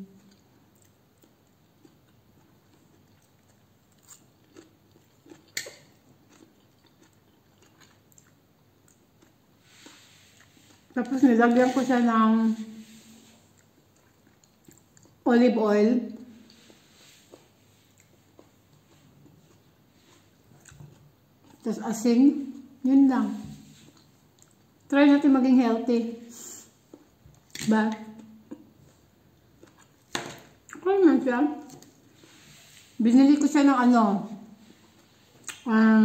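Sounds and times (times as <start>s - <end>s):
person chewing salad: 0.0s - 11.0s, 13.3s - 15.2s, 16.3s - 21.6s, 23.7s - 24.9s, 26.7s - 27.6s, 28.2s - 30.8s, 34.6s - 35.7s.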